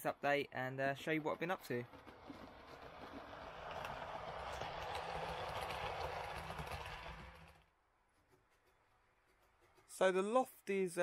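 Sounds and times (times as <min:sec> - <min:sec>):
model train whirring on track: 0:01.0 - 0:07.7.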